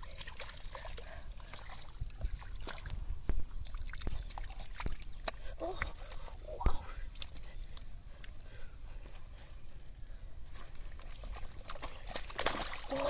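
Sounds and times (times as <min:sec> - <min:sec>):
wet mud squelching: 0:00.0 - 0:13.0
shallow water sloshing: 0:10.7 - 0:13.0.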